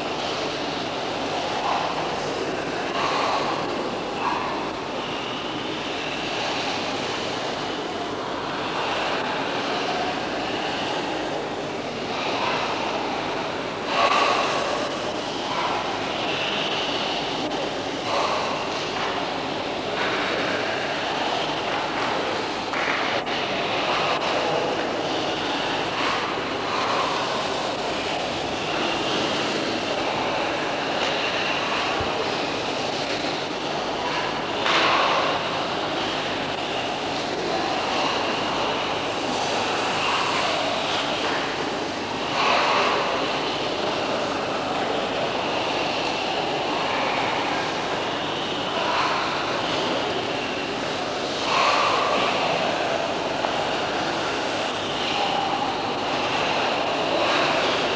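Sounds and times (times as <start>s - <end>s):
indistinct voices in large hall: 0.0s - 57.9s.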